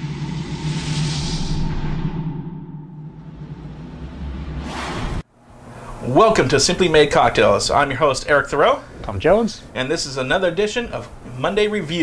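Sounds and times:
rushing whoosh: 0.0s - 5.3s.

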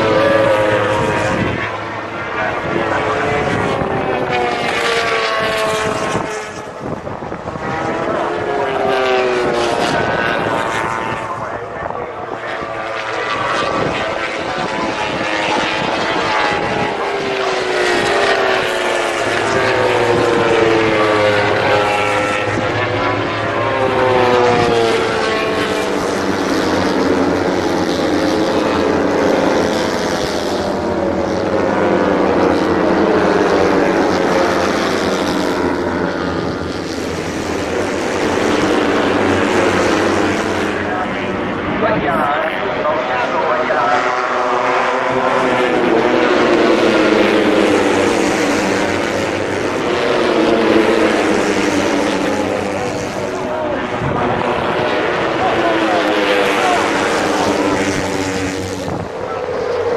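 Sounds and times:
racing motorcycles passing: 0.0s - 59.9s.

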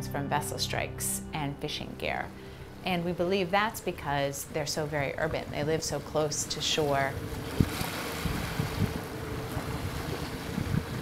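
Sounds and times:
faint steady hum: 0.0s - 11.0s
wind buffeting microphone: 4.5s - 11.0s.

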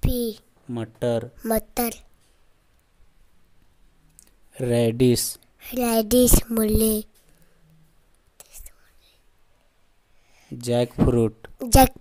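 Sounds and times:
person speaking: 0.0s - 2.1s, 4.1s - 7.2s, 10.5s - 12.0s
faint whisper: 7.6s - 9.3s.

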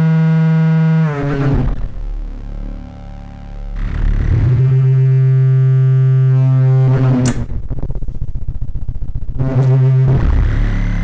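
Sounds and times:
synthesizer drone: 0.0s - 11.0s.

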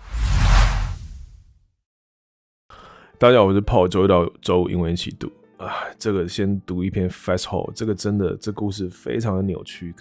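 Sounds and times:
whoosh with deep rumble: 0.0s - 1.5s.

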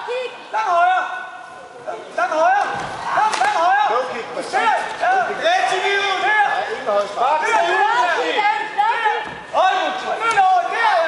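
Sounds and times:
people shouting and cheering: 0.0s - 11.0s.

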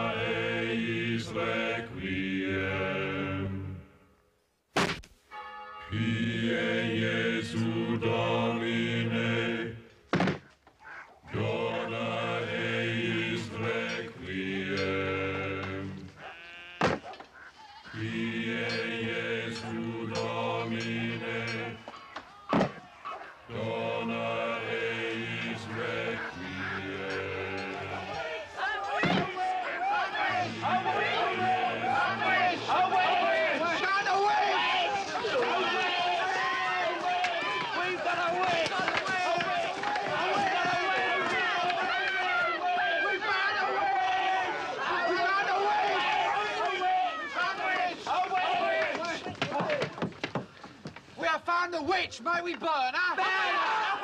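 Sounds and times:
men chanting in unison: 0.0s - 3.7s, 5.9s - 9.9s, 11.3s - 16.2s, 17.9s - 21.9s, 22.7s - 49.4s
wooden board thunk: 4.8s - 5.1s, 10.1s - 10.4s, 16.8s - 17.1s, 22.5s - 22.8s, 29.0s - 29.3s
crowd shouting: 10.8s - 50.1s, 52.7s - 54.0s.

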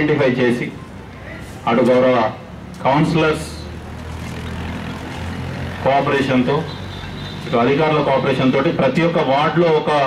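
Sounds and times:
speech: 0.0s - 3.7s, 7.5s - 10.0s.

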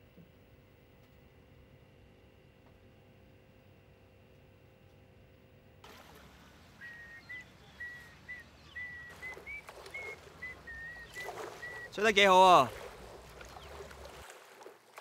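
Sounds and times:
water: 0.0s - 15.0s
wind: 0.0s - 15.0s.

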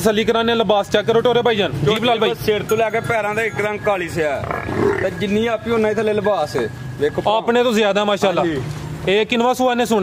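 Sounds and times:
man talking: 0.0s - 10.0s.

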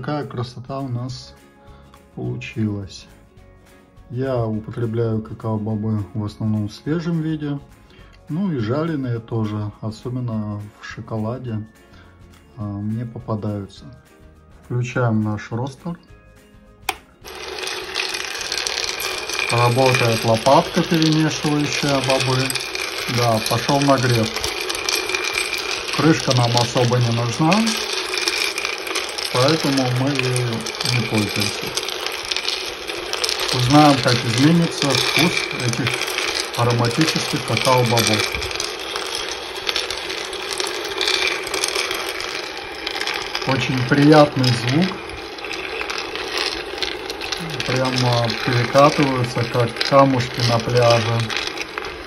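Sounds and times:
beans rattling in roaster: 17.2s - 52.0s.

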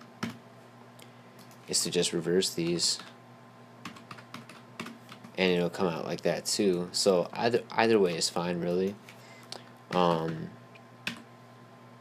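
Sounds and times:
keyboard typing: 3.8s - 5.3s.

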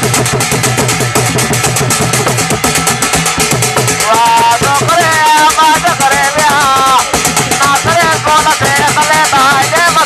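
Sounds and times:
fast drum-led dance music: 0.0s - 10.0s.

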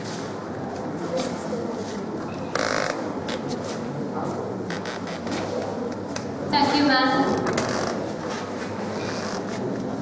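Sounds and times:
audience murmur: 0.0s - 10.0s.

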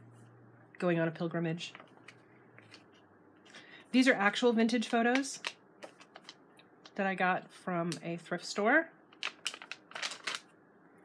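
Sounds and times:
paper pages turning: 9.2s - 10.4s.

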